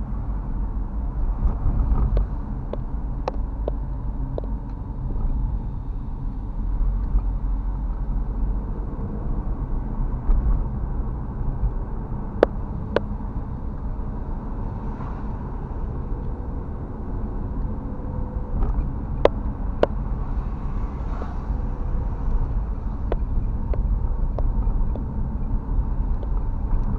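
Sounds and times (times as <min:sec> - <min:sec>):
car interior rumble and tyre noise: 0:00.0 - 0:26.9.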